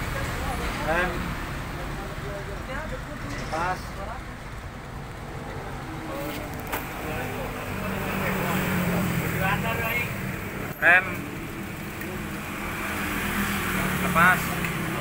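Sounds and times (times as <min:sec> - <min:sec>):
steady engine noise: 0:00.0 - 0:15.0.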